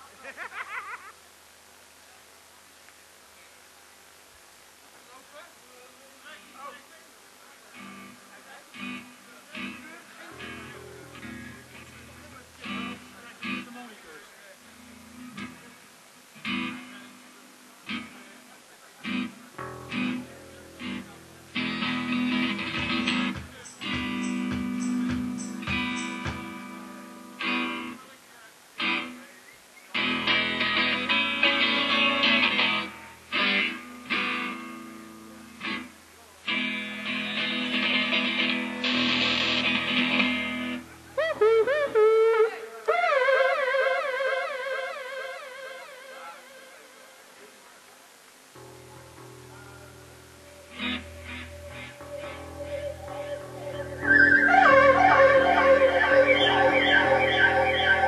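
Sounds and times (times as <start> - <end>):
electric guitar chords: 7.7 - 13.9, 14.6 - 28.0, 30.0 - 46.6, 48.5 - 58.0
bass guitar notes: 10.4 - 13.7, 19.6 - 26.7, 48.6 - 58.0.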